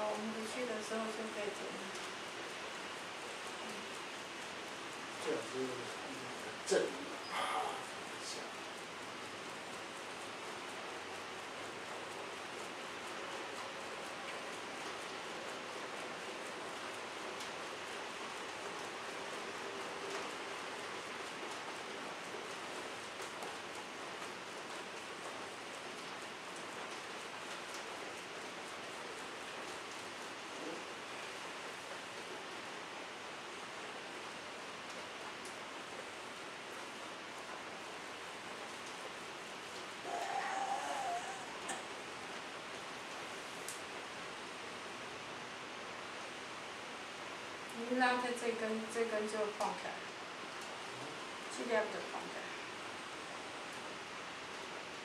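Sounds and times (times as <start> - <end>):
steady background hiss: 0.0 - 55.0.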